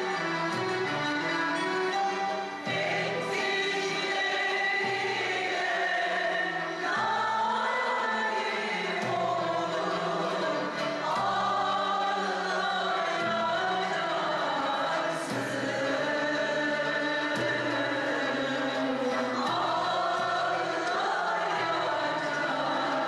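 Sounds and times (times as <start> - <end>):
choir singing: 0.0 - 23.0
violins: 0.0 - 23.0.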